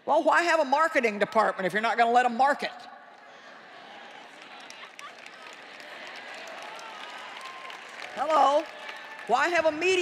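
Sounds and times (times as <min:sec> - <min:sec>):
scattered hand claps: 0:04.2 - 0:10.0.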